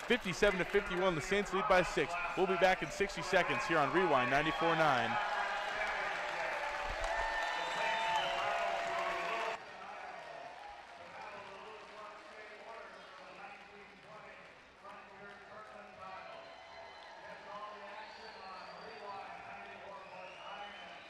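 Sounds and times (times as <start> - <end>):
crowd chattering and calling out: 0.0 - 9.6
people clapping: 0.0 - 21.0.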